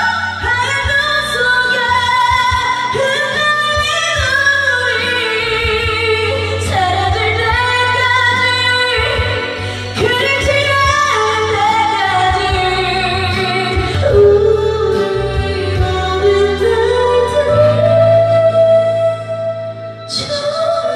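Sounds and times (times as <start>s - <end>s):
karaoke backing track: 0.0s - 20.9s
woman singing into microphone: 0.0s - 20.9s.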